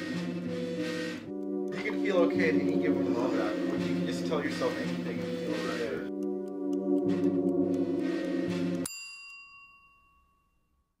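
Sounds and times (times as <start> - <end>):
bell-like metallic note ringing: 8.7 - 11.0.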